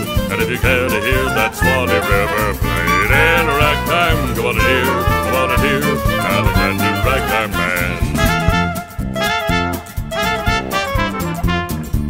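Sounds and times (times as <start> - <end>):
fiddle melody: 0.0 - 11.8
western swing band playing: 0.0 - 12.0.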